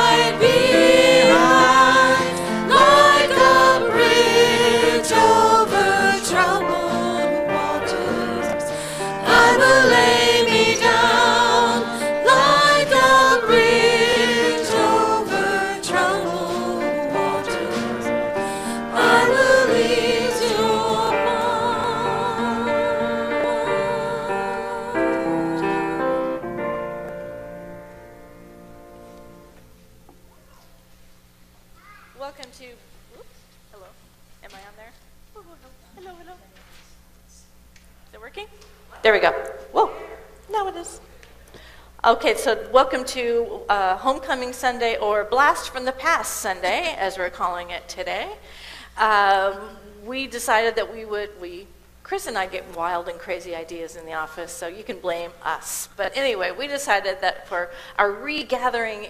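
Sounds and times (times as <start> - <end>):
group singing in harmony: 0.0 - 26.7.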